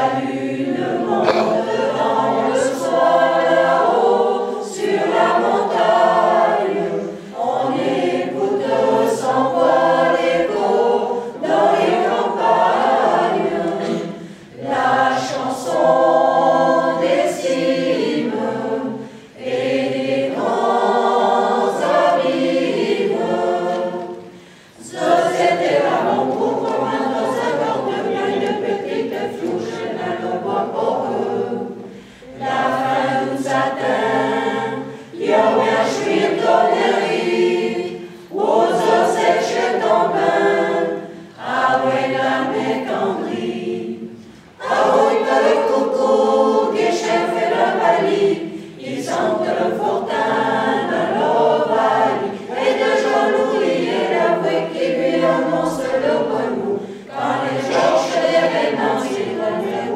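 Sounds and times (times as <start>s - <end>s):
choir singing a cappella: 0.0s - 59.9s.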